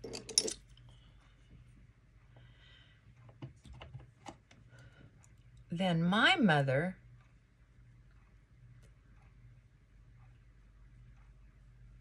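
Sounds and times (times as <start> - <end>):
makeup items clattering: 0.0 - 0.6.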